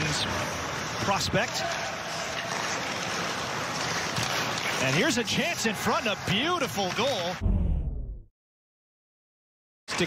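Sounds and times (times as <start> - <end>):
ice hockey arena ambience: 0.0 - 8.0.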